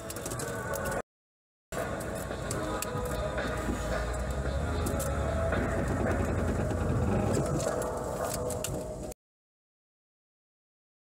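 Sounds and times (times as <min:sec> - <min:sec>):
car engine running: 0:01.9 - 0:08.2.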